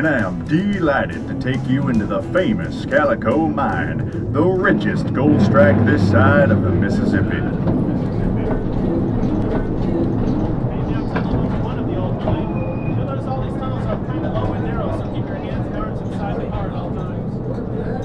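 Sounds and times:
train cars rumbling on track: 0.0s - 18.0s.

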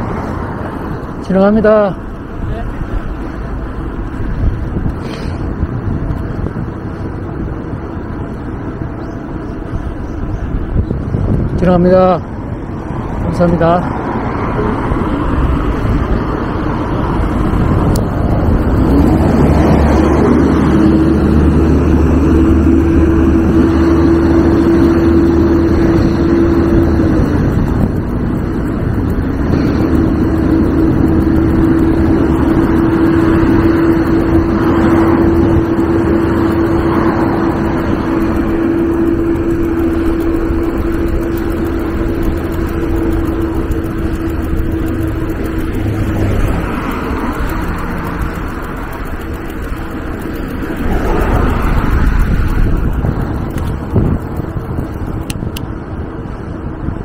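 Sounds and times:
bus engine rumbling: 0.0s - 57.0s
road traffic passing: 0.0s - 57.0s
steady mid-pitched whine: 5.8s - 57.0s.

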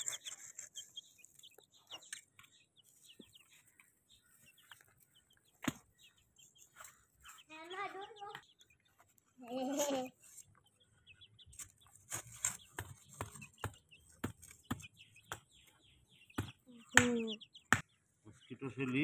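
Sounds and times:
chicks peeping: 0.0s - 19.0s.

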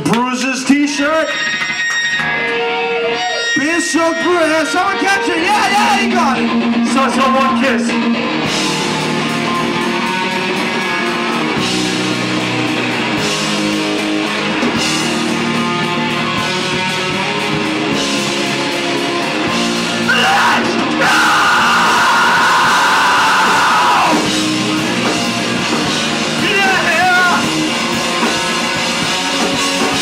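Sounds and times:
heavy rock band playing: 0.9s - 30.0s
yelled vocal: 19.9s - 24.5s.

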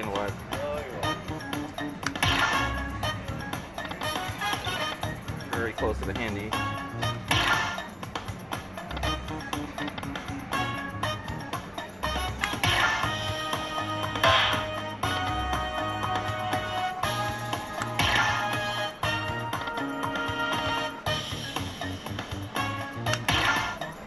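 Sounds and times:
slot machine music with pulsing beat: 0.0s - 24.0s.

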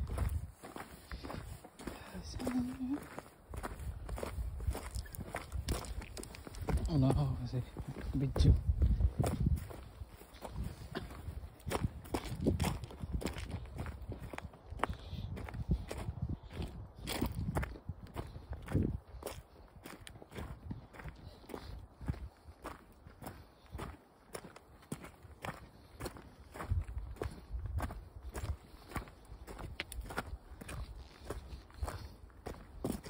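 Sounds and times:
footsteps on gravel: 0.0s - 33.0s.

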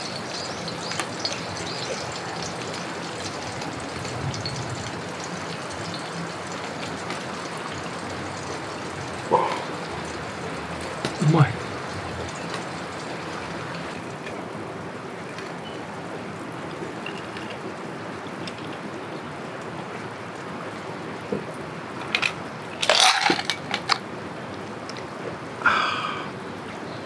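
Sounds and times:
breathy exhale: 25.6s - 26.4s.

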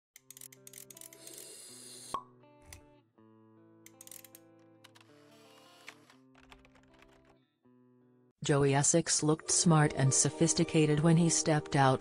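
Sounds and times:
soft music with guitar-like tones: 0.4s - 12.0s.

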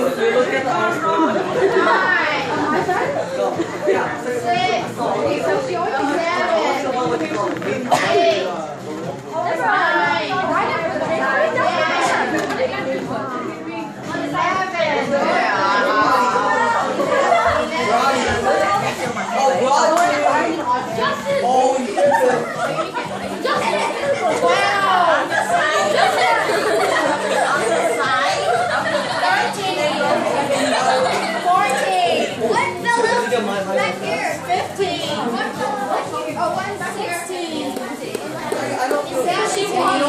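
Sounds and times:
young people chattering: 0.0s - 40.0s.

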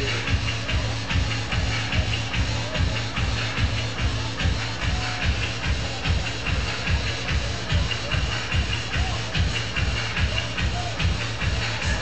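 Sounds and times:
loud dance music with heavy bass: 0.0s - 12.0s.

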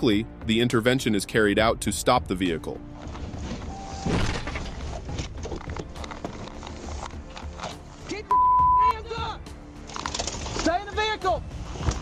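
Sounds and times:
background music: 0.0s - 12.0s
censor bleep: 8.3s - 8.9s.

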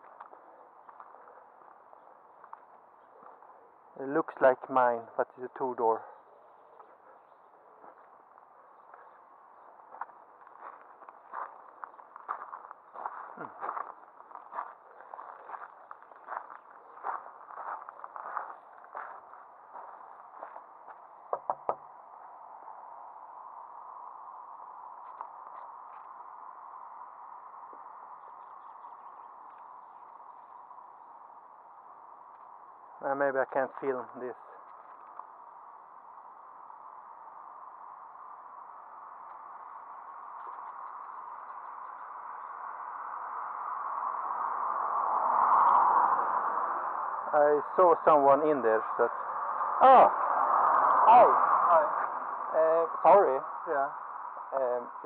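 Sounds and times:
footsteps on gravel: 9.9s - 21.0s.

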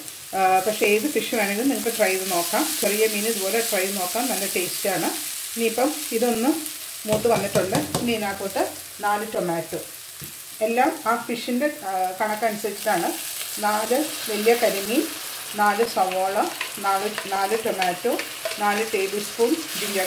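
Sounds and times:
onions sizzling in frying pan: 0.0s - 20.0s.

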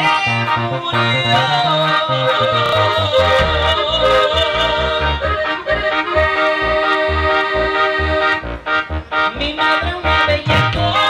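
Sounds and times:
accordion lead: 0.0s - 11.0s
pulsing bass line: 0.0s - 11.0s.

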